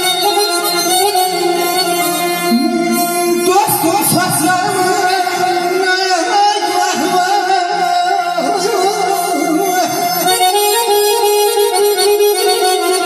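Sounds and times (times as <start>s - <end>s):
keyboard accompaniment: 0.0s - 13.0s
wavering held melody notes: 0.0s - 13.0s
wedding band music over speakers: 0.0s - 13.0s.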